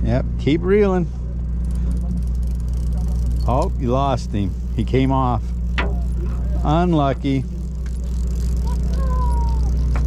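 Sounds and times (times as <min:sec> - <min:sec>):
boat engine drone: 0:00.0 - 0:10.0.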